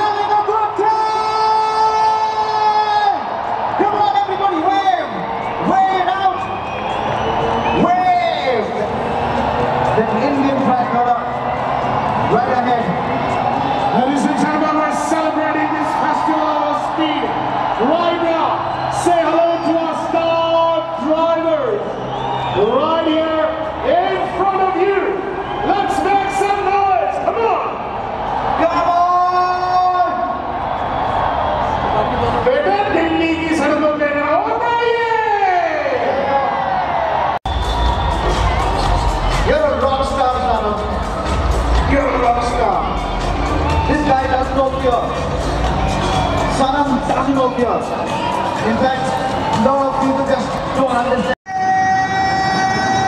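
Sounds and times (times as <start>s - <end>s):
crowd noise: 0.0s - 53.0s.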